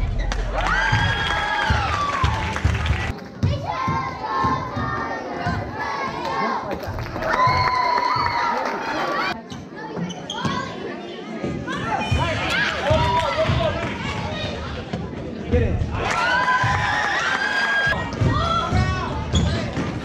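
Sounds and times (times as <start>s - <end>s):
crowd shouting and cheering: 0.0s - 10.7s, 11.4s - 20.0s.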